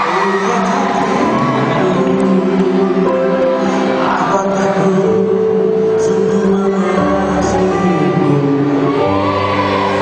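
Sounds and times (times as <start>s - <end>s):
man singing a long note: 0.0s - 9.1s.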